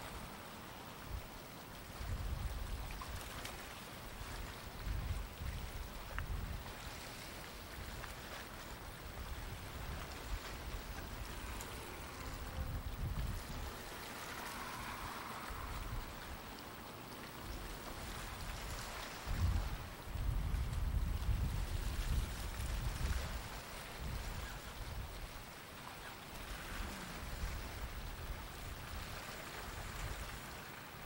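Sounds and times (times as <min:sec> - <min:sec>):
faint outdoor air hiss: 0:00.0 - 0:31.0
wind buffeting microphone: 0:02.0 - 0:03.2, 0:04.7 - 0:06.7, 0:08.9 - 0:16.5, 0:17.5 - 0:25.3.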